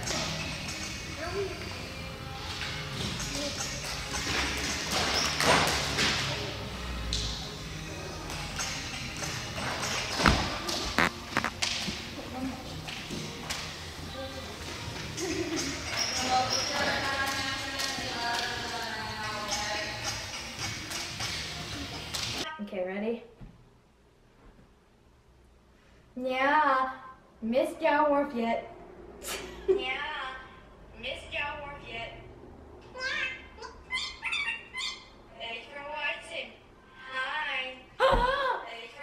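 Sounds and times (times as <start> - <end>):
voices in a gym: 0.0 - 23.3, 26.1 - 39.0
foot landings: 9.7 - 12.0.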